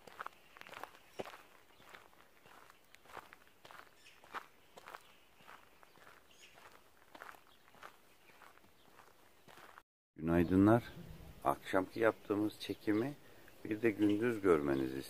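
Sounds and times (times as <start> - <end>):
footsteps on forest floor: 0.0 - 9.8.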